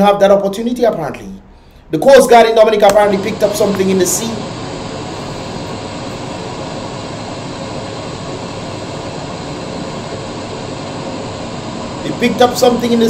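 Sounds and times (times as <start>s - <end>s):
steady rushing noise: 1.9s - 13.0s.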